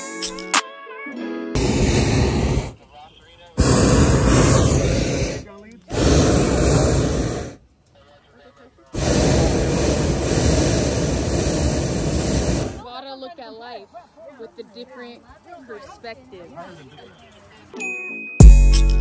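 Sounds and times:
propane burner blasts: 1.6 - 2.8, 3.6 - 7.6, 9.0 - 12.8.

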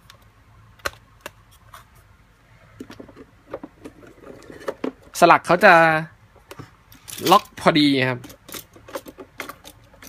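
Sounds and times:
small plastic clicks and rattles: 8.2 - 10.0.

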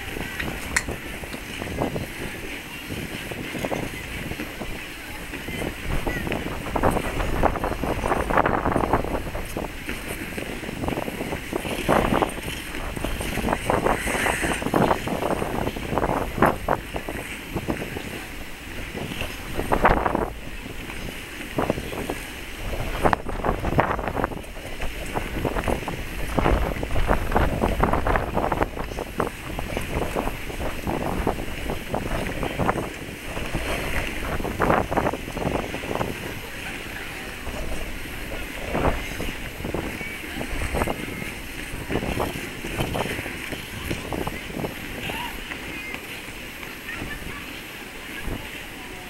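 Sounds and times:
distant crowd chatter: 0.0 - 49.0
wind on microphone: 0.0 - 49.0
skate blades scraping ice: 9.4 - 16.0, 28.8 - 47.6.

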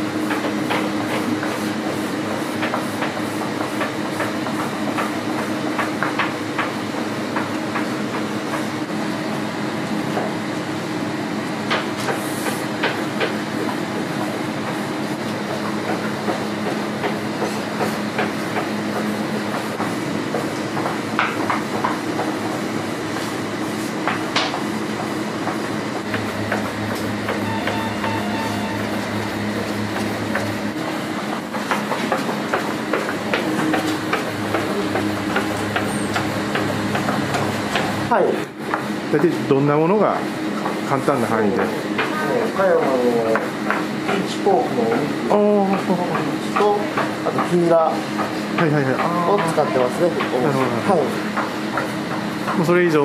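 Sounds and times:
steady mechanical hum: 0.0 - 53.0
wooden rolling pins tapping: 31.4 - 37.9.

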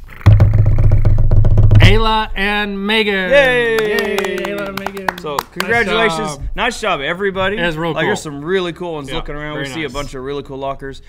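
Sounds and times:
drum roll: 0.1 - 2.3
voice: 1.8 - 11.0.

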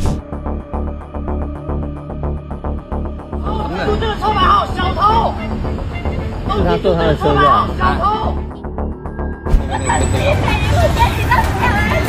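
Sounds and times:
low street noise: 3.0 - 8.6, 9.2 - 12.0
people talking and shouting: 3.2 - 12.0.

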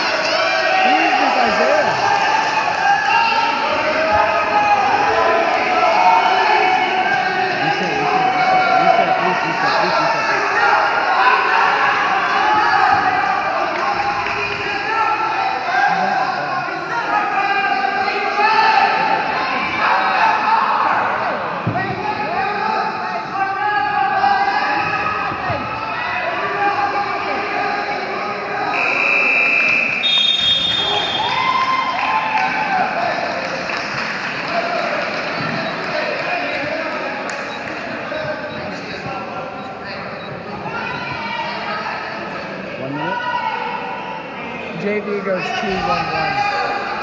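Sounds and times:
spectators and coaches shouting: 0.0 - 33.5, 34.4 - 47.0.

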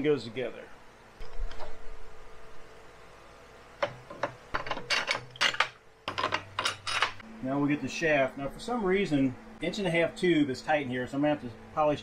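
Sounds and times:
metal parts clinking: 4.6 - 7.2.

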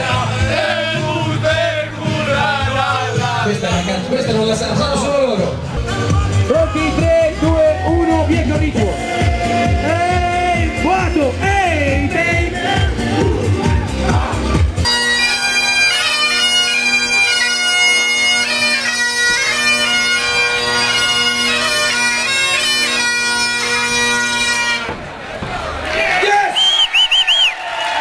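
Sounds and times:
bagpipe playing a tune: 14.8 - 24.9.

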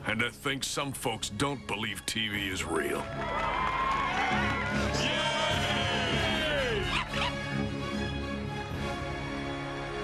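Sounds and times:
music with sustained chords: 3.5 - 10.0.

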